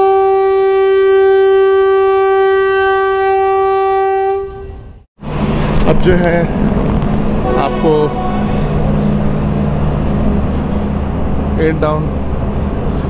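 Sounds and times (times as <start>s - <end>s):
train horn: 0.0s - 5.0s, 7.4s - 9.2s
railway platform noise: 4.6s - 13.0s.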